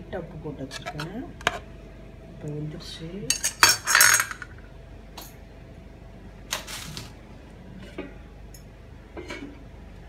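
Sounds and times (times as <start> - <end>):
metal kitchenware clattering: 3.3 - 4.6.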